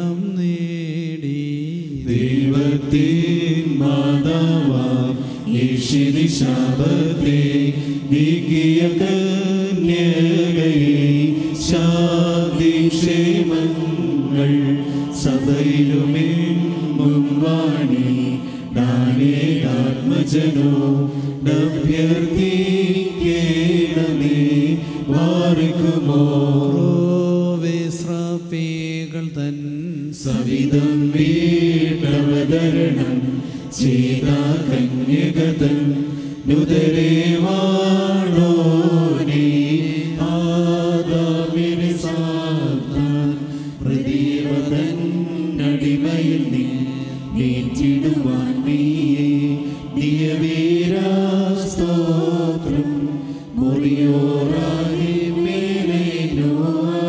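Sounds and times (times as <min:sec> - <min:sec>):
man chanting into microphone: 0:00.0 - 0:56.6.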